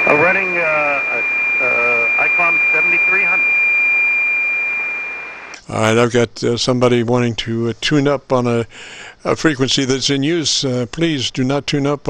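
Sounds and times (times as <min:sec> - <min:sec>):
faint radio voice: 0:00.0 - 0:03.4
radio band noise: 0:00.0 - 0:05.6
steady high radio whistle: 0:00.0 - 0:06.2.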